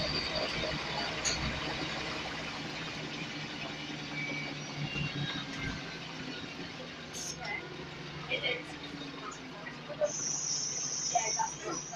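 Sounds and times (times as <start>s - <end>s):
bus cabin noise: 0.0s - 11.9s
bus diesel engine humming: 0.0s - 11.9s.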